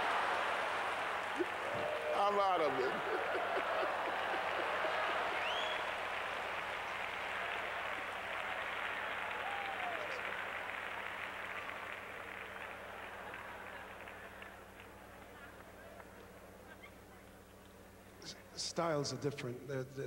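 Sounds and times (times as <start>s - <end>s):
congregation applauding: 0.0s - 16.3s.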